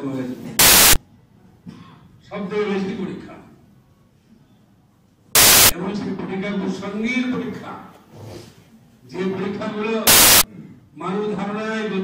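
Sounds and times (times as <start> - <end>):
static hiss burst: 0.6 - 1.0, 5.4 - 5.7, 10.1 - 10.5.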